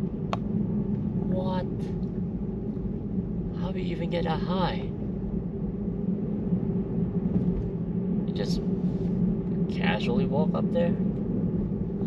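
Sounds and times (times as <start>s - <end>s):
road and tyre rumble: 0.0s - 12.0s.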